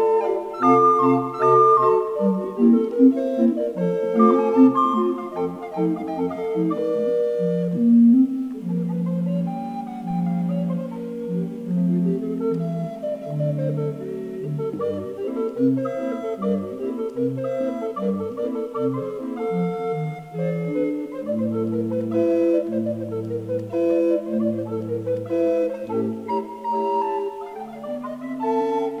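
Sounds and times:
recorder ensemble playing ragtime: 0.0s - 29.0s.

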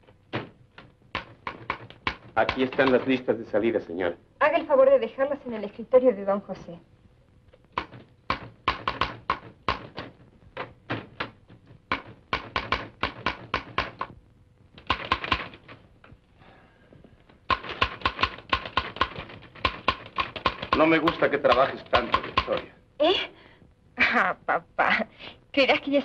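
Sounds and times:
manual typewriter typing: 1.1s - 3.2s, 7.7s - 14.1s, 14.8s - 15.8s, 17.5s - 22.7s.

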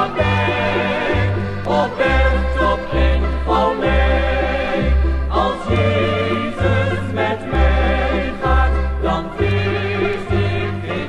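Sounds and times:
bass line: 0.0s - 11.0s
choir singing a hymn: 0.0s - 11.0s
instrumental accompaniment: 0.0s - 11.0s.

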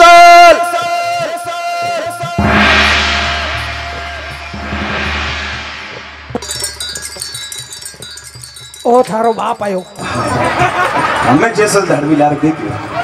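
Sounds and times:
synth crash wash: 2.4s - 7.3s
deep drone: 2.4s - 7.6s
shimmering wind-chime sound: 5.9s - 10.9s.

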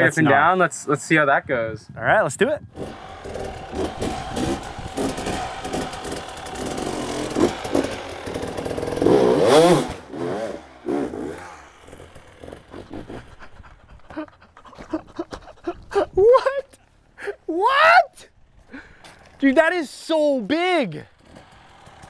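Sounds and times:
dirt bike engine revving: 2.7s - 13.8s, 21.1s - 22.0s.

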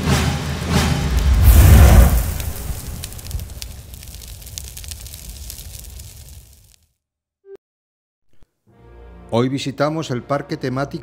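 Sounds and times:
deep swell: 0.0s - 3.5s
fine crackling sparkle: 1.1s - 6.9s.

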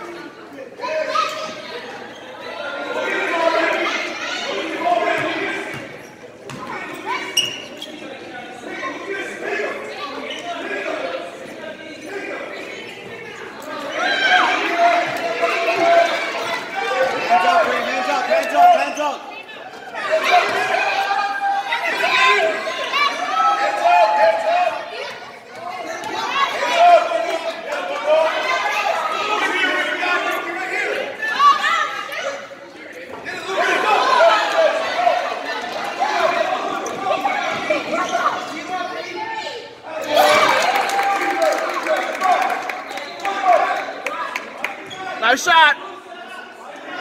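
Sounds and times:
echoing chatter of voices: 0.0s - 47.0s.

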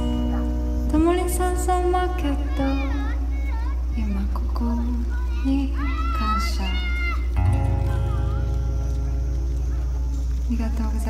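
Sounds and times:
acoustic guitar chord ringing: 7.4s - 10.1s.

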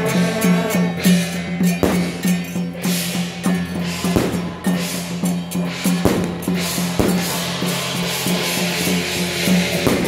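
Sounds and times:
drums and cymbals beating: 0.0s - 10.0s.

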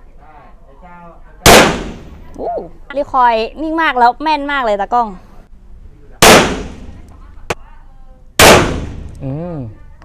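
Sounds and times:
pistol shots with echo: 1.5s - 2.3s, 6.2s - 7.0s, 8.4s - 9.2s.

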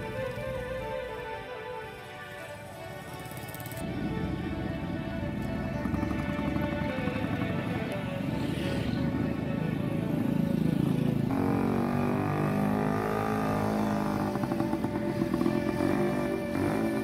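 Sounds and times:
background music sustained notes: 0.0s - 17.0s
motorcycles passing: 0.0s - 17.0s.

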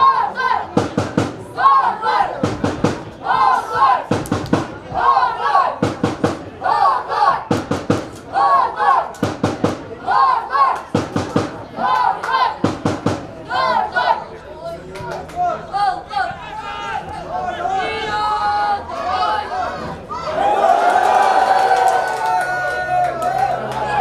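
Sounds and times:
football supporters chanting: 0.0s - 20.3s
drum beats: 0.6s - 8.5s, 9.1s - 13.6s.

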